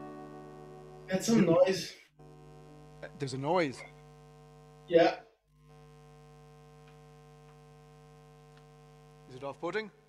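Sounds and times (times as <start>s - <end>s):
electrical hum from guitar rig: 0.0s - 10.0s
faint ticks: 6.8s - 7.7s, 8.5s - 8.8s.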